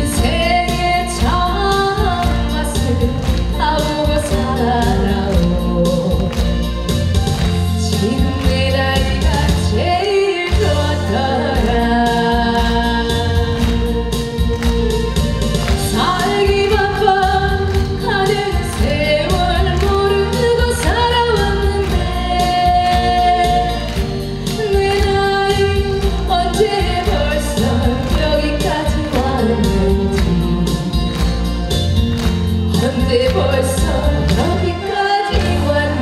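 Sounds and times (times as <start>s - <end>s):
woman singing into a microphone: 0.0s - 6.8s, 7.6s - 14.6s, 15.7s - 31.6s, 32.7s - 36.0s
backing music with steady beat: 0.0s - 36.0s.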